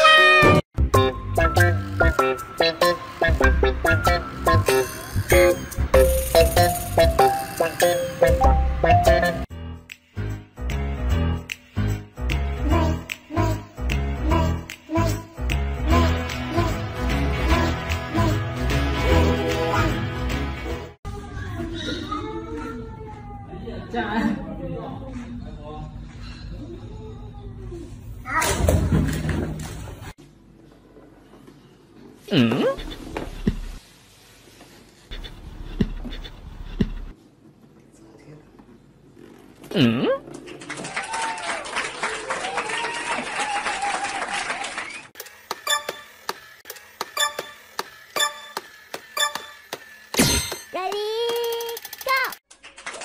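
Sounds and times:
bouncy background music: 0:00.0 - 0:20.9.

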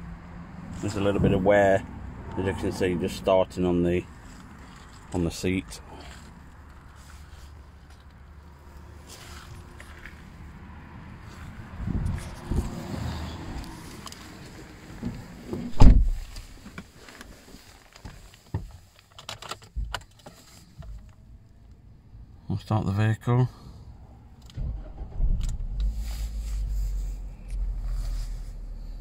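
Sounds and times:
rumbling handling noises in car: 0:03.9 - 0:10.4, 0:11.2 - 0:21.4, 0:24.3 - 0:29.0
heavy thud: 0:15.6 - 0:16.4.

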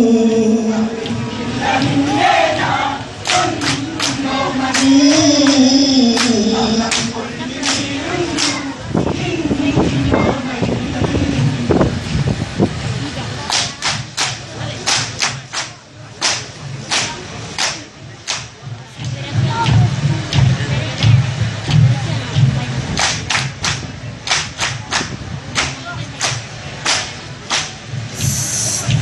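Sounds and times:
murmur of voices: 0:00.0 - 0:29.0
people clapping in unison: 0:01.0 - 0:08.8, 0:13.4 - 0:21.2, 0:22.9 - 0:29.0.

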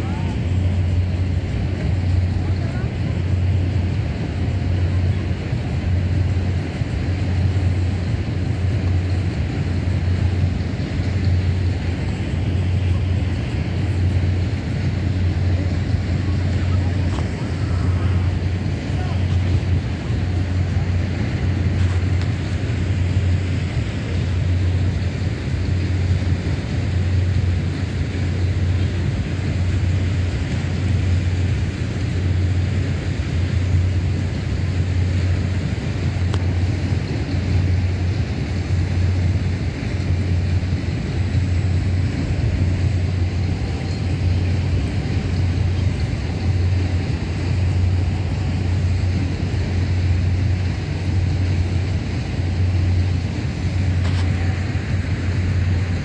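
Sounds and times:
pulsing low hum: 0:00.0 - 0:56.0
swing ride rumble: 0:00.0 - 0:56.0
wash of noise: 0:00.0 - 0:56.0.

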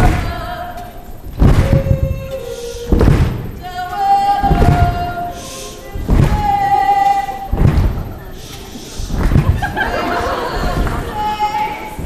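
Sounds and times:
woman singing: 0:00.0 - 0:08.4, 0:10.1 - 0:12.0
loud low thump: 0:01.4 - 0:02.1, 0:02.9 - 0:03.6, 0:04.5 - 0:05.1, 0:06.1 - 0:06.6, 0:07.5 - 0:08.1, 0:09.1 - 0:09.7.

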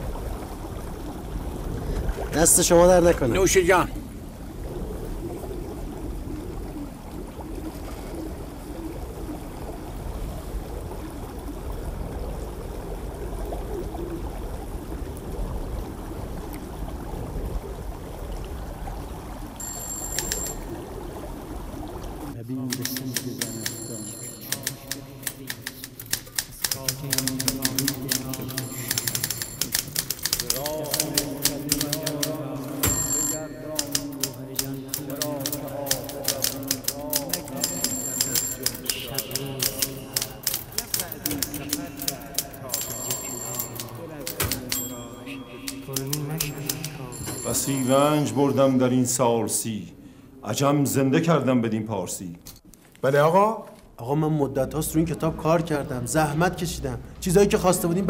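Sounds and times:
short high rings or beeps: 0:19.6 - 0:20.6, 0:32.8 - 0:33.6, 0:37.6 - 0:40.1, 0:42.7 - 0:43.9, 0:44.8 - 0:45.9, 0:47.0 - 0:48.3
typewriter clatter: 0:24.4 - 0:33.0, 0:33.8 - 0:44.9.

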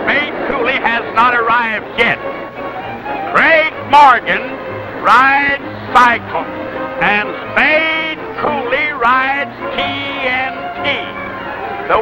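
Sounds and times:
film music: 0:00.0 - 0:12.0
voice holding sliding notes: 0:03.1 - 0:12.0.

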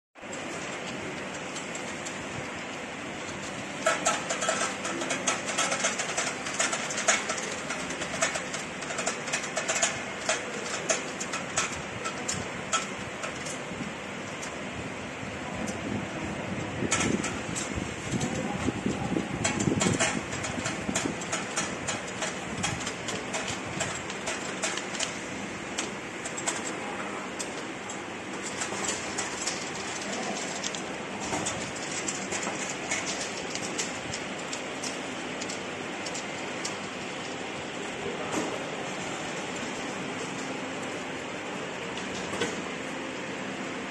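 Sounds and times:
conveyor machinery running: 0:00.2 - 0:43.9.

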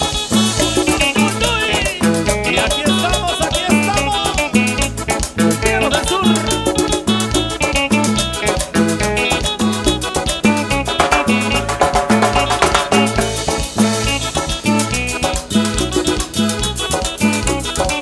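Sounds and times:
accordion: 0:00.0 - 0:18.0
congas: 0:00.0 - 0:18.0
drum kit: 0:00.0 - 0:18.0
electric bass guitar: 0:00.0 - 0:18.0.

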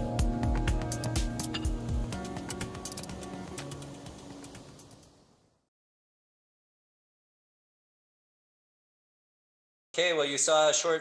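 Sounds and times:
background music with percussion: 0:00.0 - 0:05.0.

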